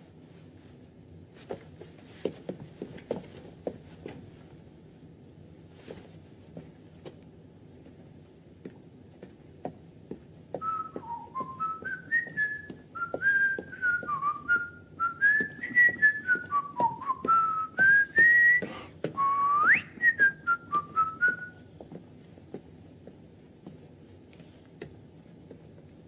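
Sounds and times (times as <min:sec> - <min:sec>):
soft taps: 0:08.6 - 0:14.7, 0:21.2 - 0:26.0
person whistling a tune: 0:10.6 - 0:21.7.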